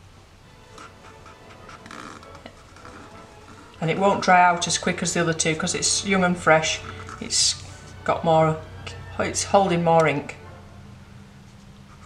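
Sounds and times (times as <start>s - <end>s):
pen scratching across paper: 0.7s - 4.3s, 11.5s - 12.0s.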